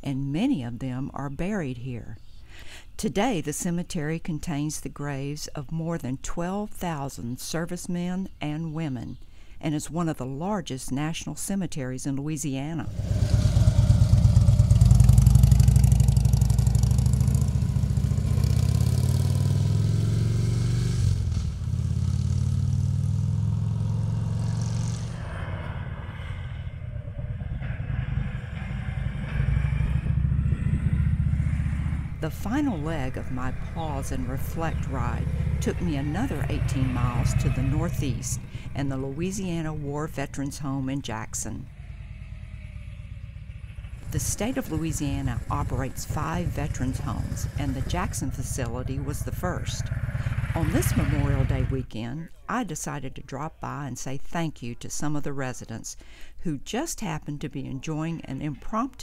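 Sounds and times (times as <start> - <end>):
motorcycle engine accelerating: 12.8 - 51.9.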